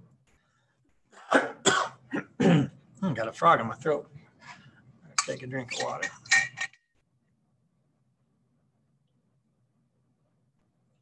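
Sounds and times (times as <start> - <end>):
man coughing: 1.2 - 2.8.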